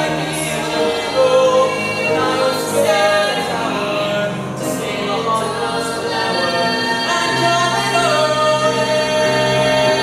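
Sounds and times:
people singing on stage: 0.0s - 10.0s.

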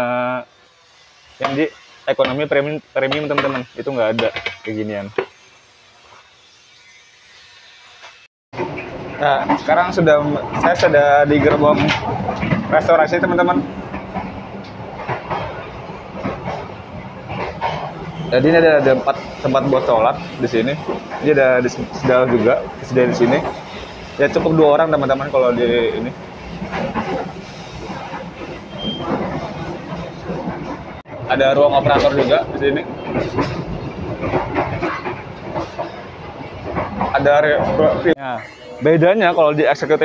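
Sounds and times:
train wheels rumbling on rails: 1.0s - 40.0s.

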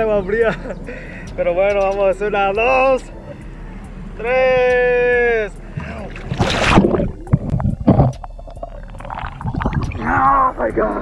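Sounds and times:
water churning and sloshing: 5.6s - 11.0s
loud splash into water: 6.0s - 8.1s.

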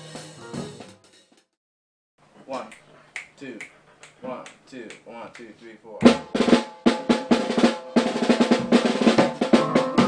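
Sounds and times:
finger snaps: 2.5s - 5.5s.

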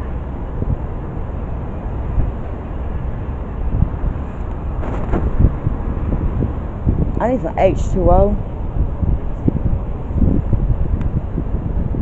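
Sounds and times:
wind buffeting microphone: 0.0s - 12.0s
brief rustles: 4.4s - 5.5s.

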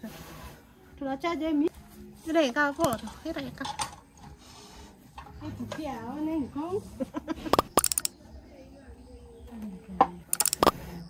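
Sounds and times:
short clinks: 7.7s - 8.1s, 10.3s - 10.7s.

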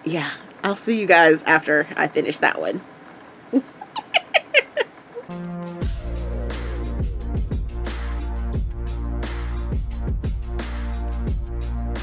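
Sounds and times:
woman giggling: 3.6s - 5.3s.

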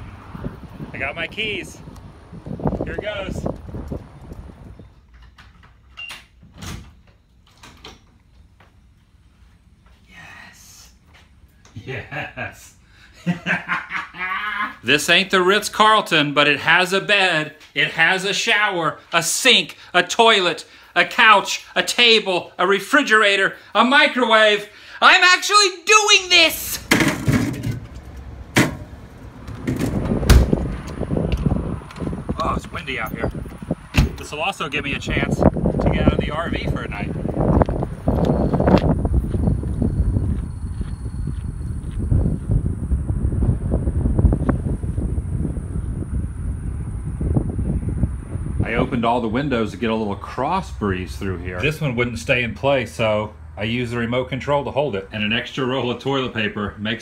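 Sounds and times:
wind rumbling on microphone: 0.0s - 5.8s, 27.6s - 50.2s
heavy thump: 29.5s - 30.8s, 33.9s - 34.2s.

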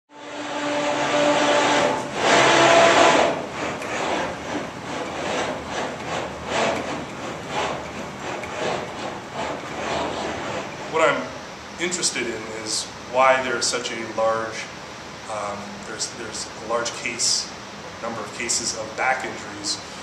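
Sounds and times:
motion platform mechanical whir: 0.1s - 11.2s.

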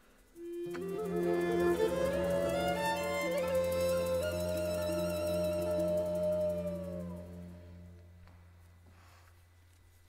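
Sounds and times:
baroque ensemble held note: 0.8s - 8.1s.

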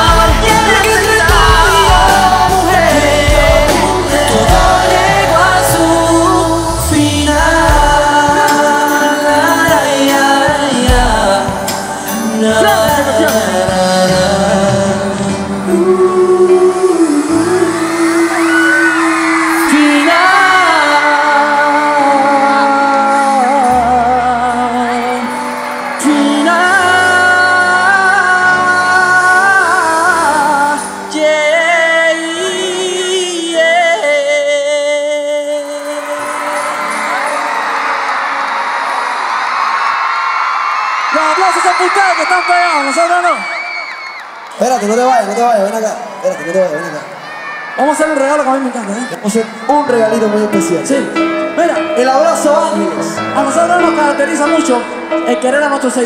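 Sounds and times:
concert crowd cheering and screaming: 0.0s - 9.9s, 10.5s - 31.2s, 35.4s - 50.5s
man singing pop ballad: 0.0s - 38.1s, 49.0s - 56.0s
band backing: 0.0s - 45.0s, 46.8s - 56.0s.

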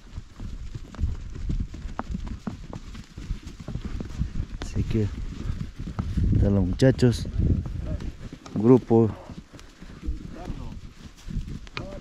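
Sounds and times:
horse hooves clopping on stony ground: 0.0s - 12.0s.

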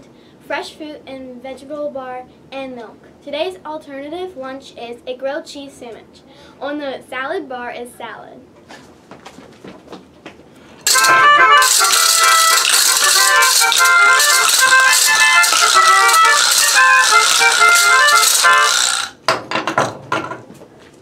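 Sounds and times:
melodica playing quick tune: 10.8s - 19.2s
hand rattles shaken: 10.9s - 19.1s
knocks: 19.3s - 20.5s.

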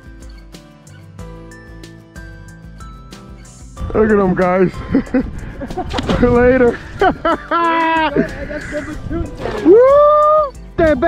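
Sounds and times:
man making wordless laughing calls: 6.7s - 10.4s.

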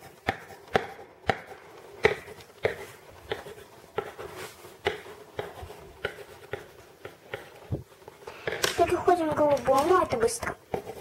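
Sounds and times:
pencil scratching on paper: 0.0s - 11.0s
pencil tapping on paper: 0.0s - 11.0s.

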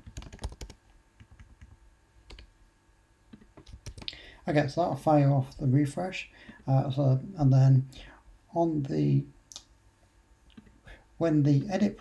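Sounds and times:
computer keyboard typing: 0.0s - 2.5s, 3.4s - 4.2s.

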